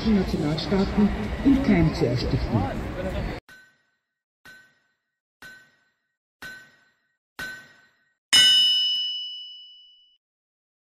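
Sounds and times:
short metallic pings: 0:03.5 - 0:10.2
loud bright clang: 0:07.4 - 0:09.6.

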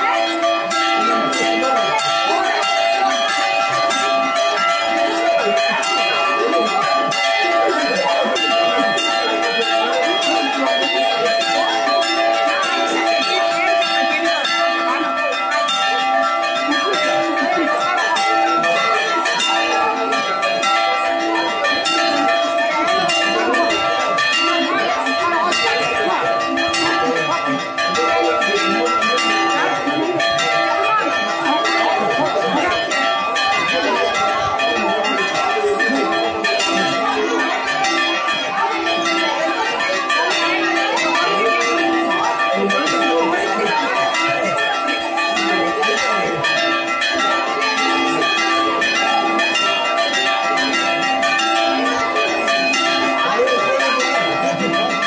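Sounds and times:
church bells pealing: 0:00.0 - 0:55.0.

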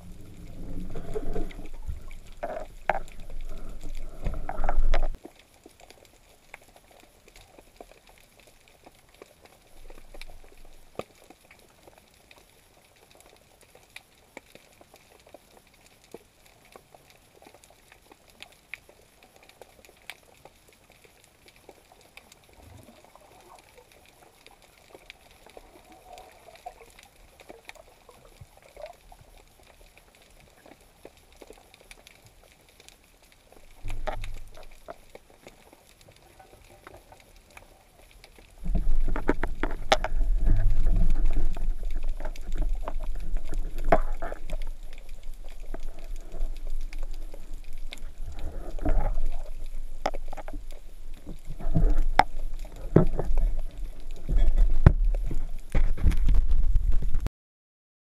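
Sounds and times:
muffled water rumble with bubbling: 0:00.0 - 0:14.3, 0:16.5 - 0:57.3.

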